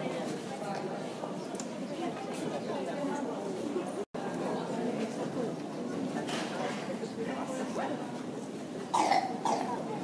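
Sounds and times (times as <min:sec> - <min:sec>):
low crowd chatter: 0:00.0 - 0:10.0
person coughing: 0:09.0 - 0:09.7.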